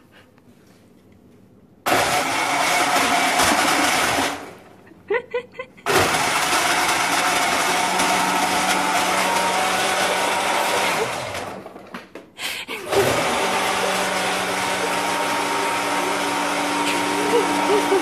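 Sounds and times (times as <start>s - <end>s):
blender blending: 1.9s - 4.7s, 5.8s - 12.0s, 12.8s - 18.0s.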